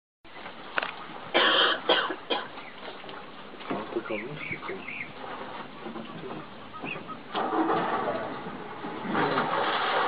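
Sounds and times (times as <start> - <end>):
person coughing: 1.4 - 2.5.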